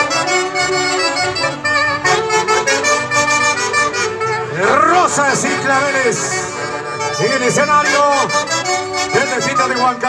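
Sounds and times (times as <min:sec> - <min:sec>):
folk orchestra playing: 0:00.0 - 0:10.0.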